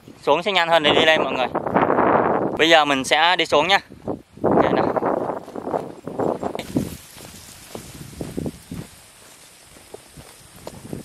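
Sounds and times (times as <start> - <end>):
faint outdoor hiss: 0.0 - 11.0
footsteps on dirt trail: 3.9 - 11.0.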